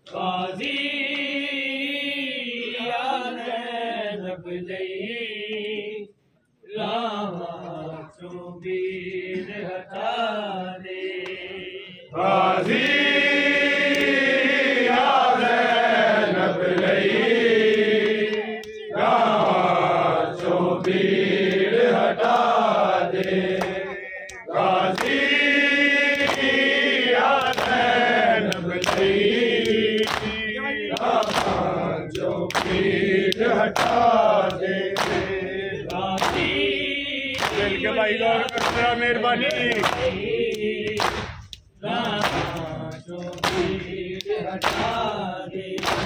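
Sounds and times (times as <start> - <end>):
men chanting a lament: 0.0 - 46.0.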